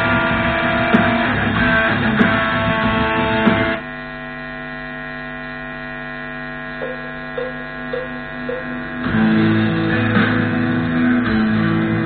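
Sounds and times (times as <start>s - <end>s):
electric guitar playing: 0.0s - 3.8s, 5.8s - 12.0s
guitar amplifier mains hum: 0.0s - 12.0s.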